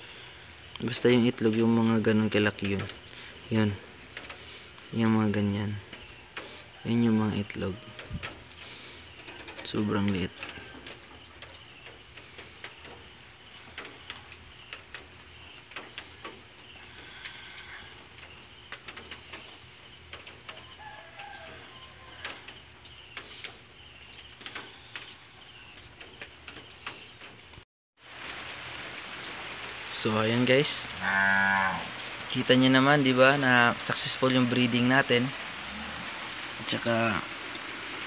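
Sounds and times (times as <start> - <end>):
pulsing insect trill: 28.5 - 38.0.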